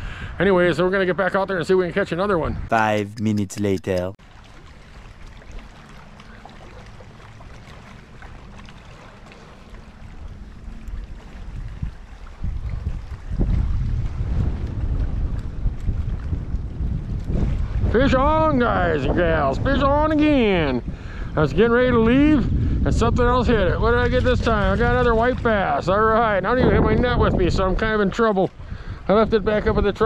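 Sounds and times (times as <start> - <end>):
wind buffeting microphone: 11.0 - 30.0.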